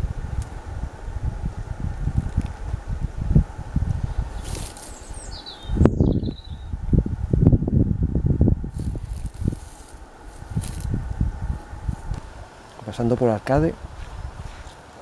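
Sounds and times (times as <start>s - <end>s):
wind buffeting microphone: 0.0s - 15.0s
small bird chirping: 4.3s - 6.7s.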